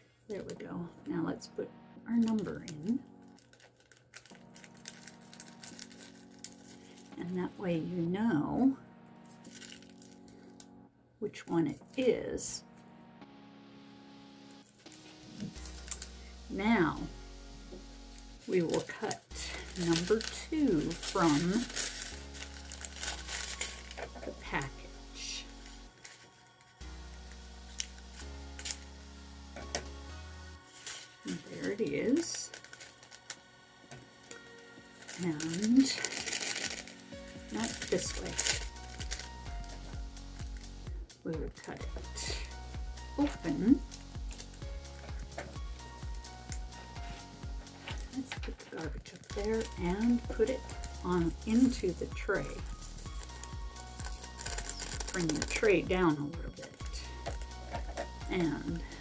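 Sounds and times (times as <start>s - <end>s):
plastic packets crinkling: 2.3s - 7.2s, 9.4s - 10.7s, 14.6s - 16.4s, 18.3s - 29.9s, 30.6s - 59.0s
scissors snipping packets: 3.4s - 7.0s, 14.8s - 16.1s, 18.6s - 24.0s, 27.1s - 28.9s, 30.7s - 33.4s, 34.0s - 39.8s, 43.2s - 59.0s
background music with bass line: 12.6s - 18.6s, 26.8s - 32.1s, 36.9s - 59.0s.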